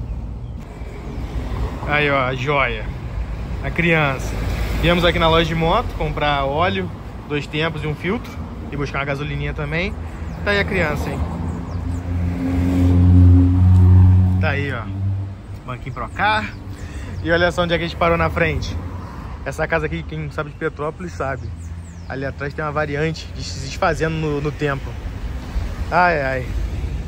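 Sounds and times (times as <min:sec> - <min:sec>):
car engine rumble: 0:00.0 - 0:24.2
street traffic: 0:00.0 - 0:27.0.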